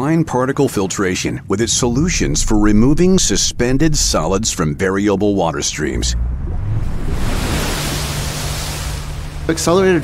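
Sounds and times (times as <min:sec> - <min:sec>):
low steady drone: 0:01.6 - 0:10.0
splashing water whoosh: 0:01.8 - 0:09.7.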